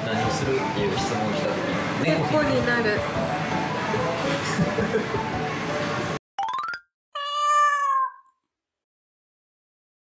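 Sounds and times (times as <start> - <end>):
upward-gliding sound effect: 6.4 - 6.8
cat meowing: 7.2 - 8.4.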